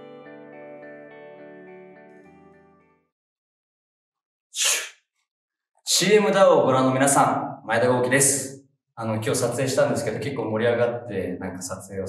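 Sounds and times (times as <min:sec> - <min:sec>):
man's sharp breath: 0:04.6 - 0:04.9.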